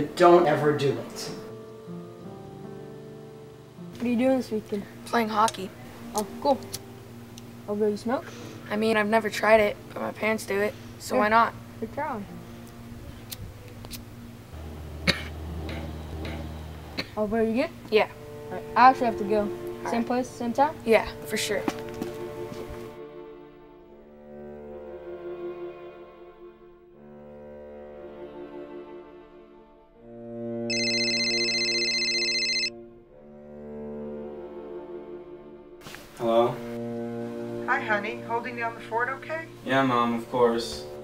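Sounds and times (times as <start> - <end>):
cello-led film score music: 0.0 - 41.0
boy coughing: 15.1 - 15.9, 17.0 - 17.3
mobile phone ringtone: 30.7 - 32.8.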